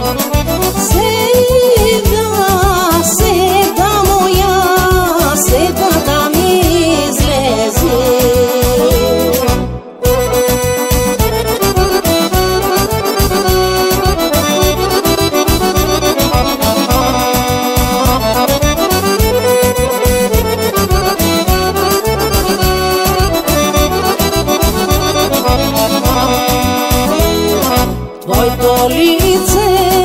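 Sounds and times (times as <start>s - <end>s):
accordion melody: 0.0s - 30.0s
steady beat with bass: 2.6s - 30.0s.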